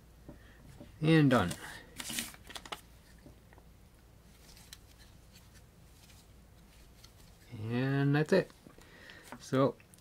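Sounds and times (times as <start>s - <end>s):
paper rustle: 1.4s - 2.9s, 4.3s - 7.5s.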